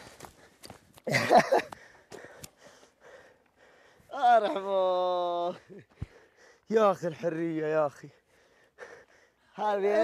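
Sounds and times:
faint footsteps on rocky ground: 0.0s - 3.6s.

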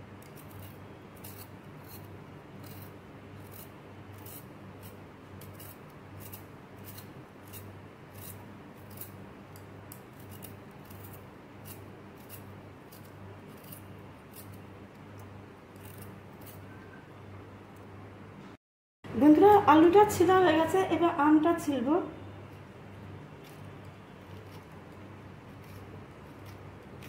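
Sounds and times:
peeler scraping potato skin: 0.2s - 16.8s, 22.5s - 27.0s.

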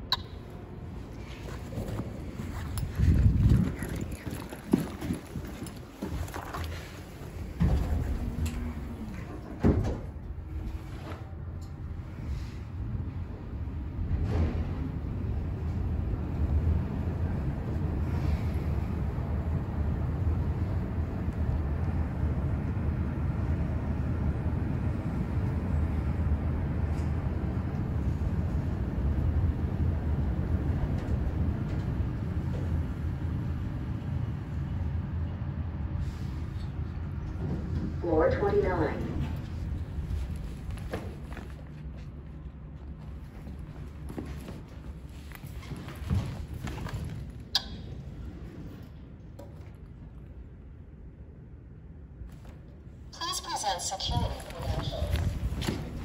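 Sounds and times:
elevator travel rumble: 0.0s - 56.0s.

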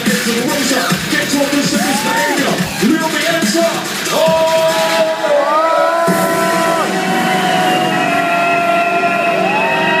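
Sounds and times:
loud electronic music: 0.0s - 10.0s.

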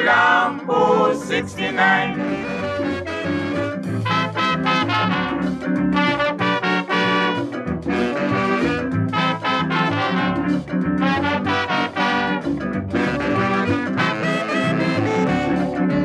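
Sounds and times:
brass horns melody: 0.0s - 16.0s
calypso band playing: 0.0s - 16.0s.

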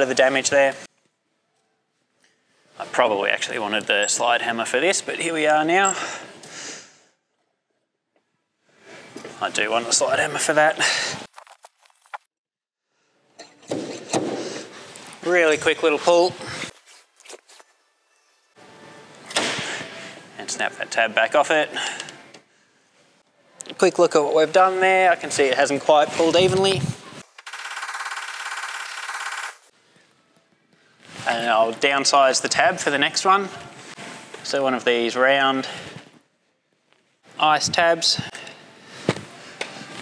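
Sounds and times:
rapid mechanical rattle: 27.4s - 29.6s.

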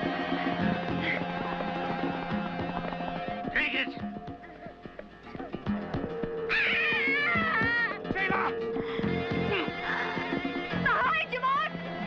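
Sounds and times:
high wavering cries: 3.0s - 10.9s.

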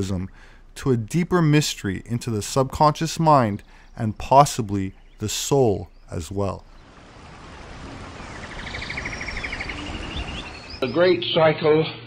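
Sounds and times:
bird trilling: 4.8s - 10.8s
waterfall rushing: 6.8s - 10.8s.

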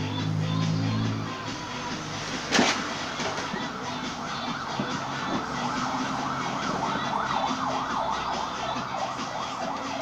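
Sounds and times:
dance music through loudspeaker: 0.0s - 10.0s
siren-like wail sweeping: 3.0s - 10.0s.

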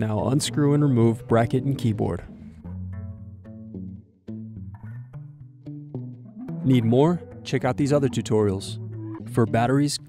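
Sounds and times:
plucked low string notes: 0.0s - 10.0s.

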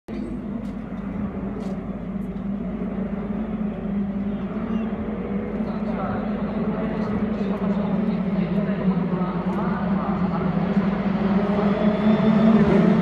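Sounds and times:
racing car engines droning: 0.1s - 13.0s.

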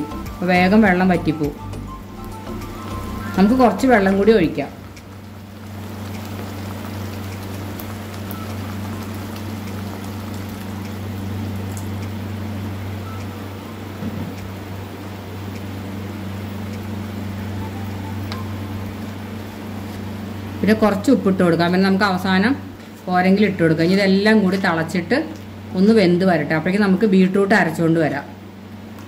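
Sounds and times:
steady low hum: 0.0s - 29.0s
liquid bubbling in a pot: 2.8s - 13.0s.

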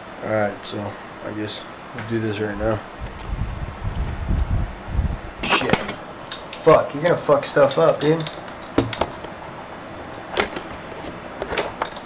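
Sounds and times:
steady background hiss: 0.0s - 12.0s
handling clicks and knocks: 7.6s - 9.4s, 10.3s - 12.0s.

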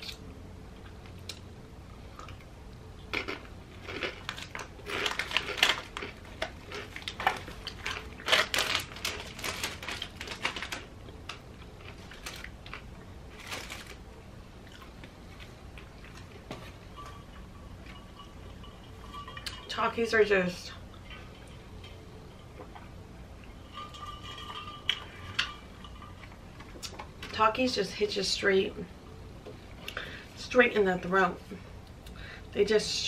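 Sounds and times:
crunchy chips being chewed: 2.2s - 14.0s.

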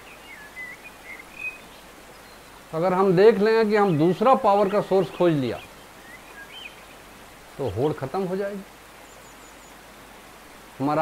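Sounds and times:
bird chirping: 0.0s - 9.9s.

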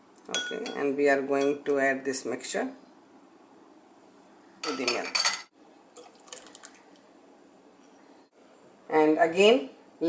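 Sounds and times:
liquid splashing into milk: 5.9s - 7.1s.

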